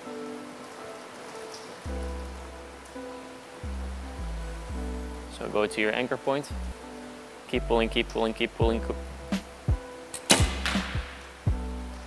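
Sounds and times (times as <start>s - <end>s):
music with steady beat: 8.6s - 12.0s
bow string snap: 10.1s - 11.3s.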